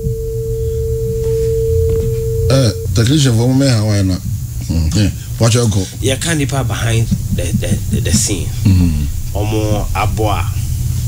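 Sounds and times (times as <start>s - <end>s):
steady phone line tone: 0.0s - 4.1s
low hum: 0.0s - 11.0s.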